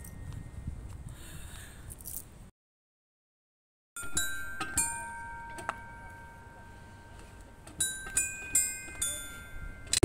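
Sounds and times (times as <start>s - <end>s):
bright bell-like chimes: 4.0s - 10.0s.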